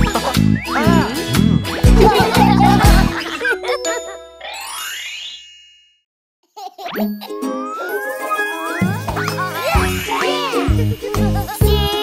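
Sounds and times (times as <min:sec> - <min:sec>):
rising sparkly glissando: 0:03.9 - 0:05.8, 0:07.4 - 0:11.5
ringing chime tones: 0:07.0 - 0:11.0.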